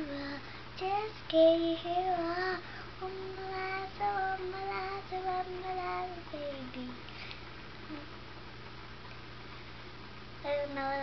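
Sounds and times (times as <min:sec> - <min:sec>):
girl singing: 0:00.0 - 0:07.0, 0:10.4 - 0:11.0.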